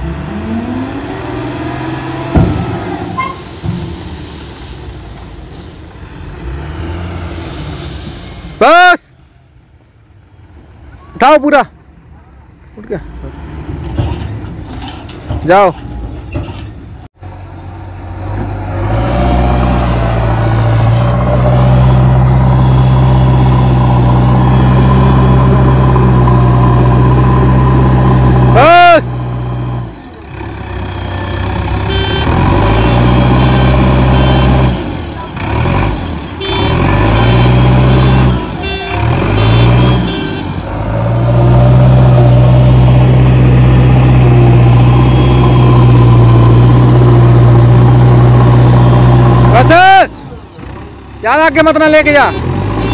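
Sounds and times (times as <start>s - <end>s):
diesel engine working under load: 0.0s - 9.2s, 13.0s - 52.9s
brief high squeal: 3.1s - 3.5s.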